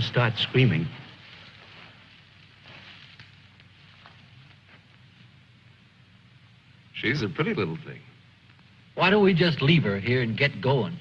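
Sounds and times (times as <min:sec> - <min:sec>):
light crackles: 0:00.0 - 0:07.0, 0:07.6 - 0:09.0
film soundtrack hiss: 0:00.0 - 0:11.0.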